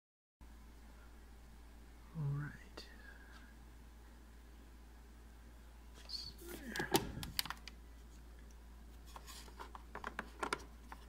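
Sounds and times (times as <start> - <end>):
steady low hum: 0.4 - 11.0.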